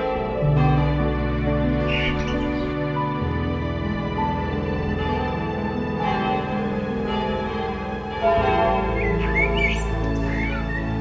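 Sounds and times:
church bells ringing: 0.0 - 11.0
blackbird singing: 1.8 - 2.8, 8.2 - 11.0.

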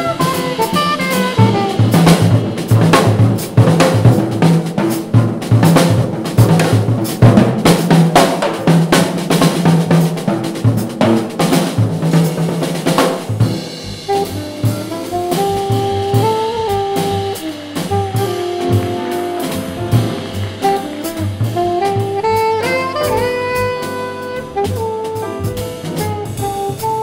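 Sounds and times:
alto saxophone held notes: 0.0 - 2.5, 14.0 - 27.0
double bass walking line: 0.0 - 27.0
jazz drum kit solo: 0.0 - 27.0.

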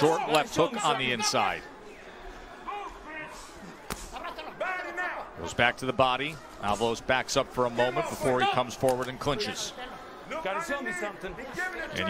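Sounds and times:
men's voices: 0.0 - 1.8, 2.6 - 12.0.

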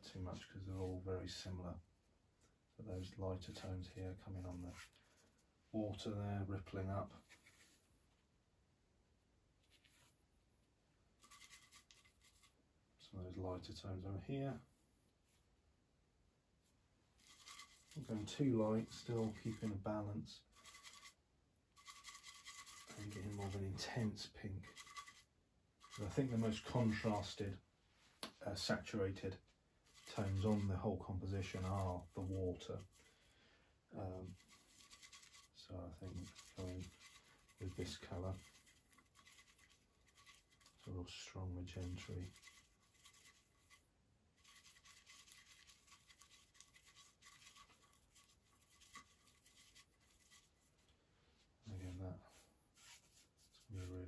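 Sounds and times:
paintbrush brushing on canvas: 4.3 - 5.2, 7.2 - 7.9, 11.2 - 12.6, 17.2 - 21.2, 21.8 - 27.3, 29.8 - 33.1, 34.1 - 40.9, 41.7 - 50.9, 51.7 - 54.0.

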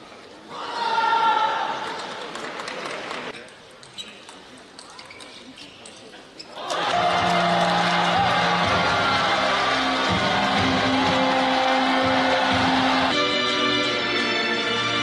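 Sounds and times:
loud music with held notes: 7.0 - 15.0.

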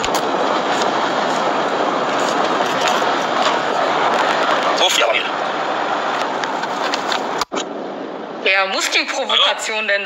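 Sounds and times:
road and engine noise inside van: 0.0 - 9.5.

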